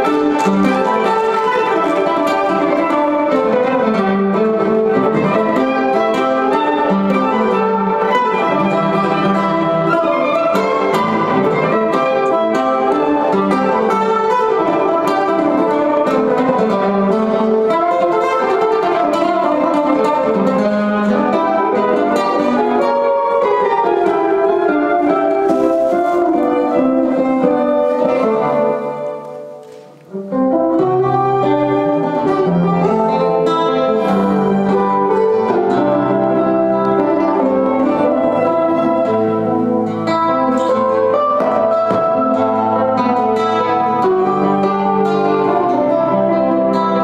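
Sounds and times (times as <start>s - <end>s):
acoustic guitars playing jazz: 0.0s - 47.0s
violin: 0.0s - 47.0s.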